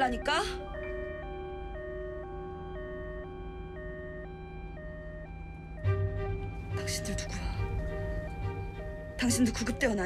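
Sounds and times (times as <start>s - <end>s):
ambulance siren hi-lo wail: 0.0s - 10.0s
low steady rumble: 0.0s - 10.0s.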